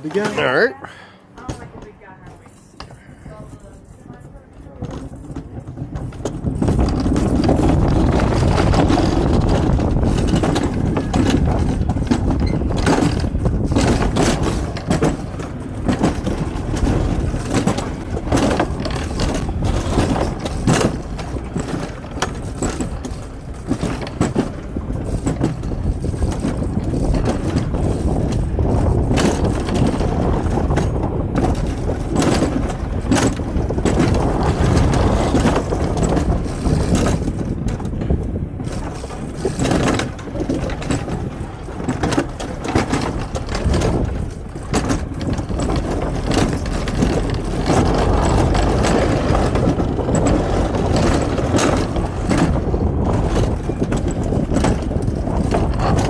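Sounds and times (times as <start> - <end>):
clacks and rattles: 0.0 - 0.7, 1.3 - 56.0
coaster wheels rumbling on rail: 0.0 - 56.0.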